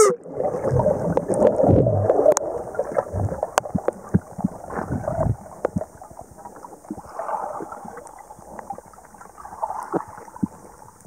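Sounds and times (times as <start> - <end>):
underwater air bubbles gurgling: 0.0 - 11.0.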